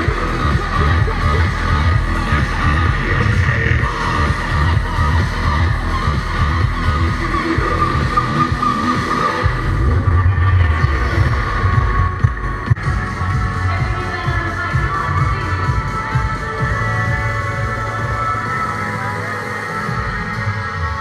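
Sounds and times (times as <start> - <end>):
loud electronic dance music: 0.0 - 21.0.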